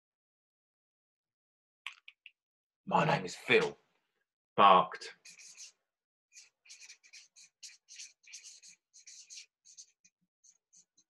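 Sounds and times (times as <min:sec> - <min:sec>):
marker pen scratching on paper: 0:05.1 - 0:11.0.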